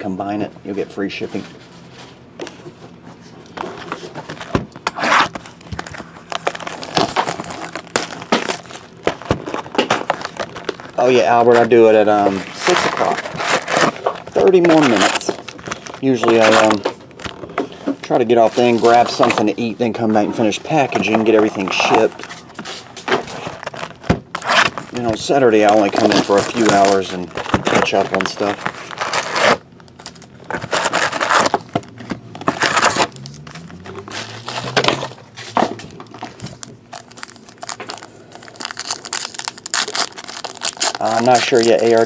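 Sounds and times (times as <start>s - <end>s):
cardboard box scraping on table: 3.6s - 5.4s
shrink wrap crinkling: 5.0s - 42.0s
shrink wrap tearing rip: 10.1s - 16.8s, 24.4s - 31.7s, 32.5s - 35.1s, 36.3s - 42.0s
cardboard box opening: 25.7s - 41.0s.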